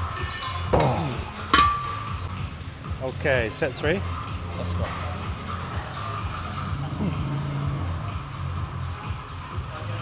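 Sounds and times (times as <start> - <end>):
background music with bass: 0.0 - 10.0.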